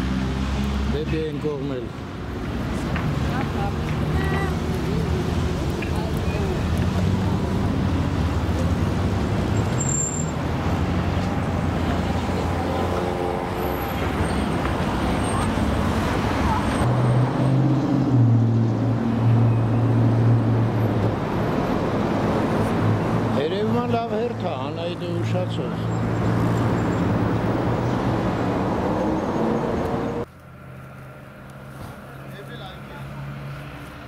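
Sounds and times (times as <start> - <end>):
vehicles passing: 0.0 - 34.0.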